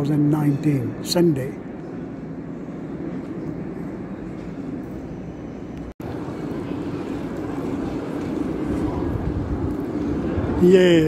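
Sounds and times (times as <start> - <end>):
tram running on rails: 0.0 - 10.7
street traffic noise: 0.0 - 11.0.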